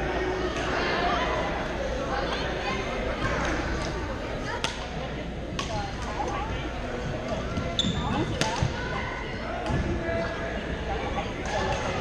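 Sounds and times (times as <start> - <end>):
murmur of voices echoing: 0.0 - 12.0.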